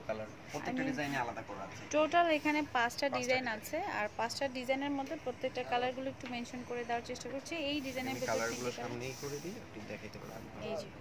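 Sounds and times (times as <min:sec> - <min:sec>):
brief hiss: 0:07.8 - 0:09.6.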